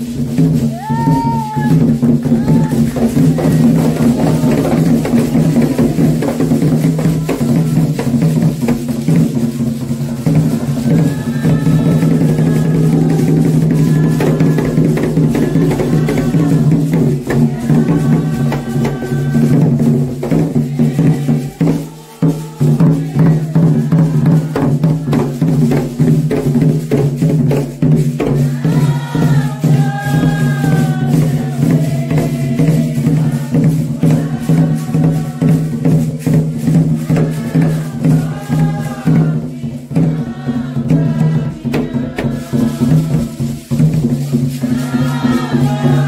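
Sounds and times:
drums and percussion beat: 0.0 - 46.0
voices singing a chant: 0.0 - 46.0.

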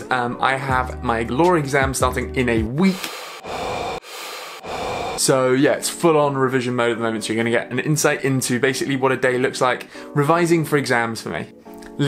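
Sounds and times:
panicked breathing into paper bag: 3.3 - 5.2, 9.9 - 10.1.

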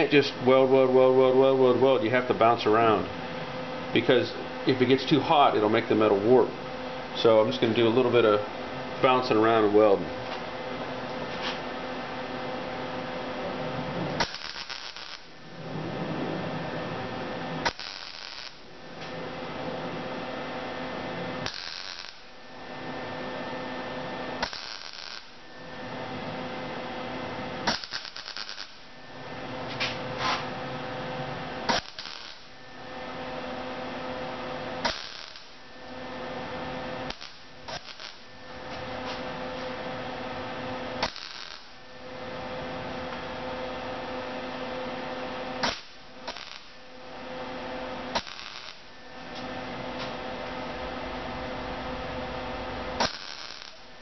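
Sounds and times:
steady welder hum: 0.0 - 54.0
welder arc crackle: 13.9 - 15.7, 16.8 - 19.2, 21.1 - 22.4, 24.4 - 25.4, 27.5 - 28.9, 31.6 - 32.6, 34.7 - 39.8, 40.9 - 41.9, 45.6 - 46.8, 47.9 - 50.1, 50.8 - 54.0.

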